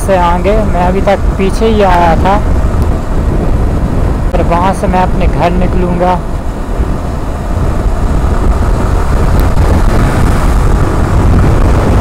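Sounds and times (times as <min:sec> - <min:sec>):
road noise: 0:00.0 - 0:12.0
wind rushing over microphone: 0:00.0 - 0:12.0
motorcycle engine: 0:00.9 - 0:12.0.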